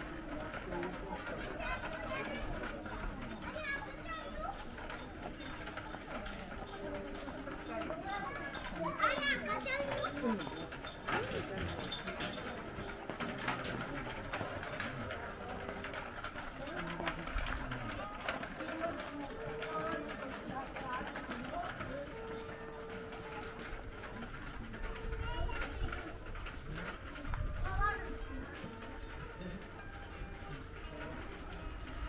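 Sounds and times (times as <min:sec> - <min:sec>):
passers-by talking: 0:00.0 - 0:32.0.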